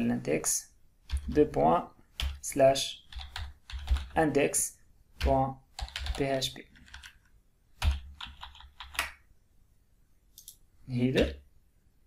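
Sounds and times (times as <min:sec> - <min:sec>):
computer keyboard typing: 0:01.1 - 0:01.5, 0:02.2 - 0:02.4, 0:03.0 - 0:04.3, 0:05.2 - 0:09.2.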